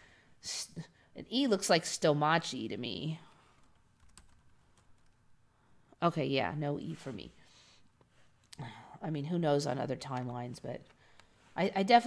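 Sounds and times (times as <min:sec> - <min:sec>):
person speaking: 0:06.0 - 0:07.4, 0:08.5 - 0:12.0.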